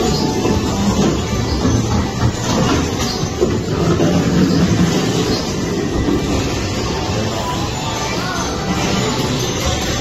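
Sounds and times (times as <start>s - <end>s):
ride vehicle rumbling on track: 0.0s - 10.0s.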